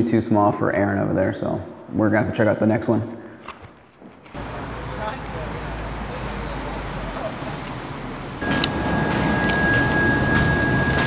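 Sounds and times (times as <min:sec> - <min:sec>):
city street traffic rumble: 0:04.2 - 0:11.0.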